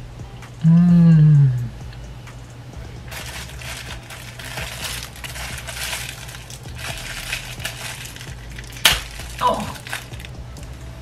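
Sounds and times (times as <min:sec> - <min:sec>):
plastic wrapper crinkling: 0:03.1 - 0:10.4.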